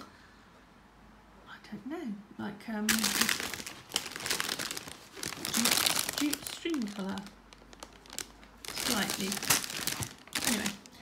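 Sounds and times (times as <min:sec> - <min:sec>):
plastic bag crinkling: 0:02.9 - 0:11.0.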